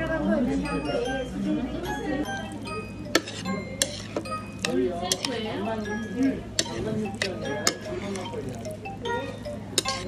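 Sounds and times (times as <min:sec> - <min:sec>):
metal utensils clinking on plate: 0:02.2 - 0:10.0.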